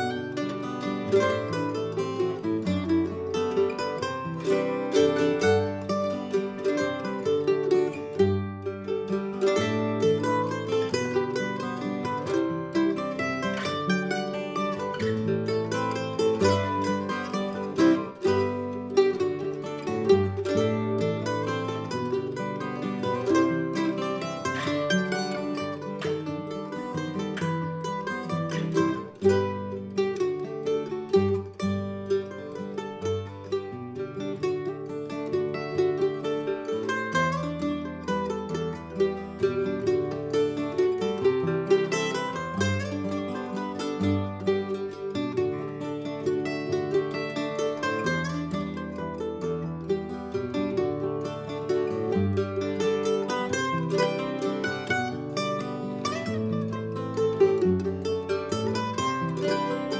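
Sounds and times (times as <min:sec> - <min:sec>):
acoustic guitar accompaniment: 0:00.0 - 0:59.9
mandolin picking waltz melody: 0:00.0 - 0:59.9.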